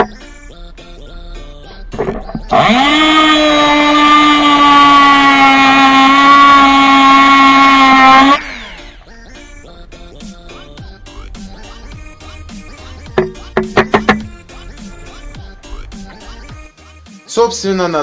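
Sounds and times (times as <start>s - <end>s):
background music: 0.0s - 18.0s
rotary tool motor whine: 2.4s - 9.1s.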